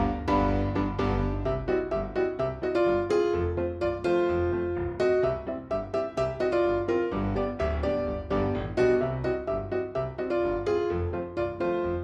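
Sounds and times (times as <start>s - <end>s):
piano music: 0.0s - 12.0s.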